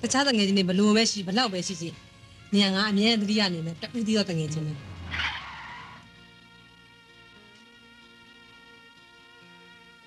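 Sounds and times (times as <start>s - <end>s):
soft sustained music: 0.0s - 10.0s
car tyres screeching: 4.8s - 6.1s.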